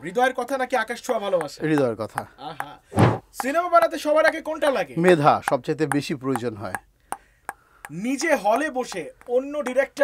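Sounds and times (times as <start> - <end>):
man talking: 0.0 - 2.8, 3.4 - 6.8, 7.9 - 10.0
ping-pong ball bouncing on paddle: 1.1 - 10.0.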